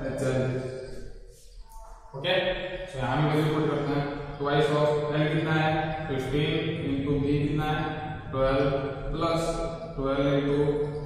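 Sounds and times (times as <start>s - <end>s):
person chanting: 0.0s - 11.0s.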